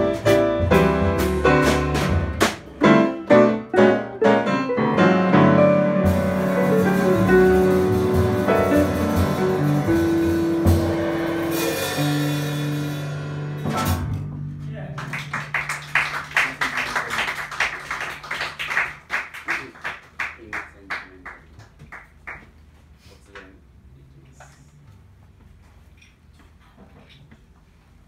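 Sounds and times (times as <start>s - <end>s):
jazz quartet final chord: 0.0s - 16.6s
audience clapping: 14.9s - 22.6s.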